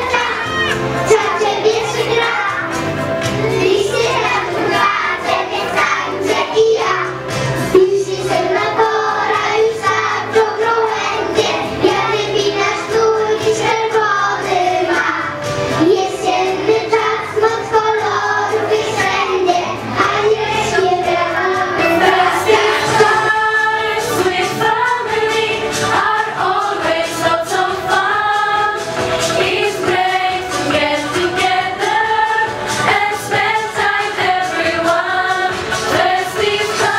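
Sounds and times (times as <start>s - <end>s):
children singing: 0.0s - 36.9s
musical accompaniment: 0.0s - 36.9s.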